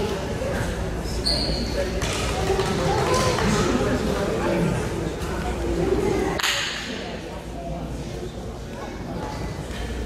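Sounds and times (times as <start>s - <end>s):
indistinct voices in a gymnasium: 0.0s - 10.0s.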